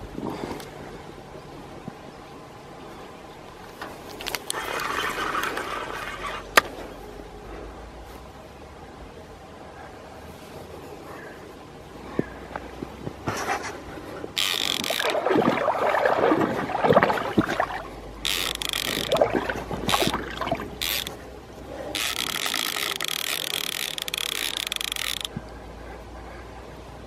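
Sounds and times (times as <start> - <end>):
reel and rod rattling: 3.8 - 6.8, 13.3 - 25.4
fishing reel drag buzzing: 14.4 - 15.2, 18.2 - 19.3, 19.9 - 21.2, 21.9 - 25.3.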